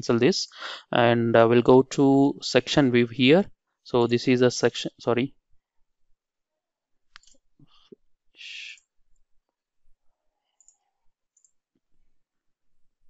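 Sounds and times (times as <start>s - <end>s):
computer mouse clicks: 7.1s - 7.4s, 10.5s - 11.6s.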